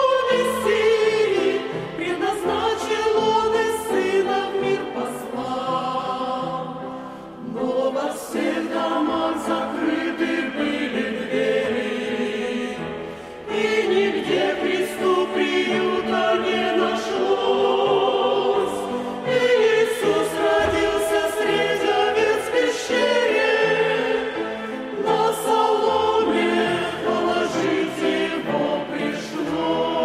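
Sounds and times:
mixed choir singing a hymn: 0.0s - 30.0s.

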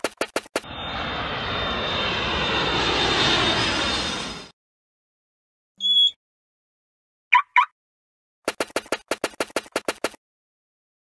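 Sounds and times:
cartoon aircraft engine: 0.0s - 4.5s.

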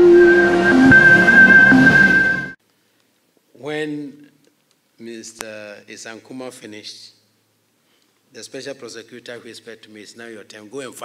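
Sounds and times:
held synth tones: 0.0s - 2.6s
high held tone: 0.0s - 2.6s
rushing noise: 0.0s - 2.6s.

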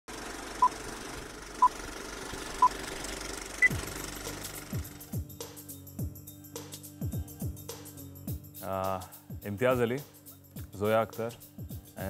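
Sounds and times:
music with falling bass swoops: 3.6s - 12.0s.

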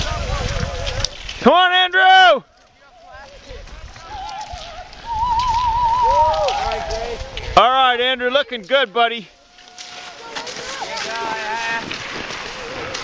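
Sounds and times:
spectators shouting and cheering: 4.0s - 7.6s.

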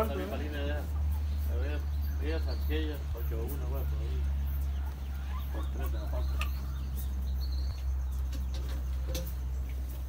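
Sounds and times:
insects chirping: 0.0s - 10.0s
steady low hum: 0.0s - 10.0s.

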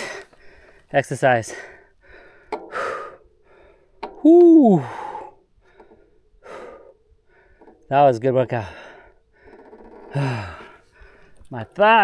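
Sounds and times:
man breathing out hard: 1.5s - 3.9s, 4.6s - 7.7s, 8.6s - 11.4s
man sighing: 4.2s - 5.4s, 10.2s - 10.8s.

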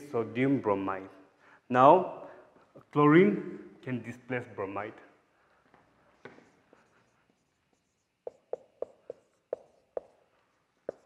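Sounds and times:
marker pen on whiteboard: 5.5s - 11.0s
marker pen taps: 6.2s - 7.0s, 7.7s - 11.0s.

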